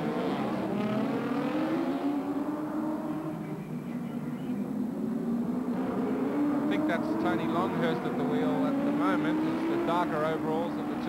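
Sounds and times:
racing car engine accelerating: 0.0 - 3.7, 4.8 - 11.0.

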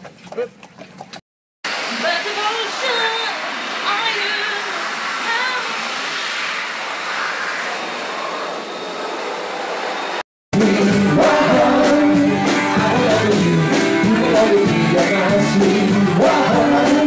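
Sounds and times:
steady rushing noise: 1.7 - 10.2
live rock band playing: 10.6 - 17.0.

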